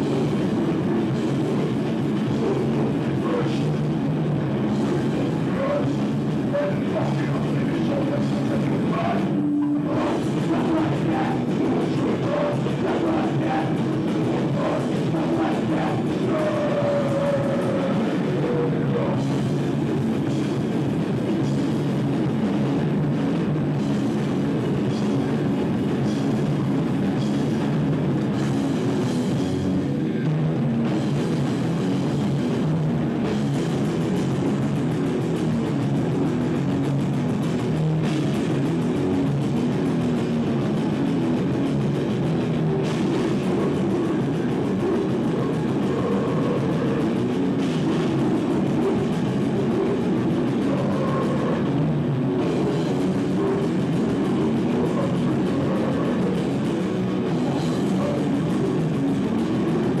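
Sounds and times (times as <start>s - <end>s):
drum kit: 0.0s - 60.0s
electric guitar: 0.0s - 60.0s
person singing: 5.4s - 19.3s.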